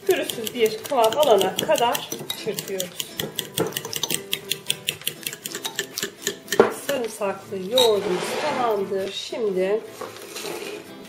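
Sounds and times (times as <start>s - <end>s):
spoon clinking against glass bowl: 0.0s - 7.0s.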